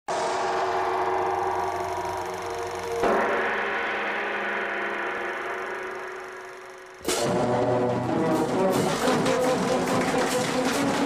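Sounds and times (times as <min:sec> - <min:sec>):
gong-like metal strikes: 0:00.1 - 0:10.2.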